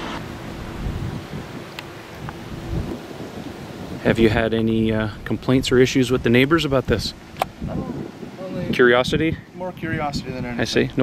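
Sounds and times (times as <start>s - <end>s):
steady outdoor hiss: 0.0s - 11.0s
wind buffeting microphone: 0.0s - 11.0s.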